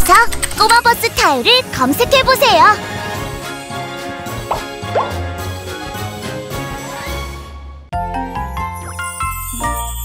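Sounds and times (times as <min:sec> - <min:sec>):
cartoon intro music: 0:04.5 - 0:05.5.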